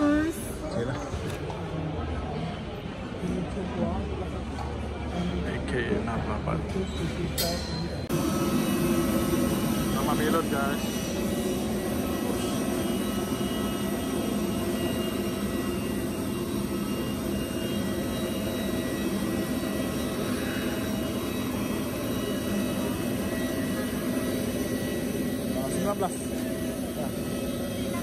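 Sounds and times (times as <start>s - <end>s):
jet aircraft rumble with high whine: 3.6s - 28.0s.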